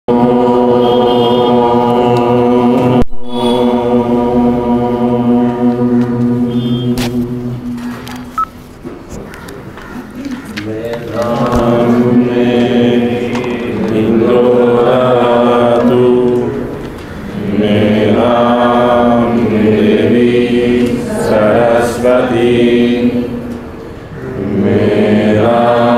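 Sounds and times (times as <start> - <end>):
mantra chanting: 0.1 - 7.9, 10.3 - 23.5, 24.1 - 25.9.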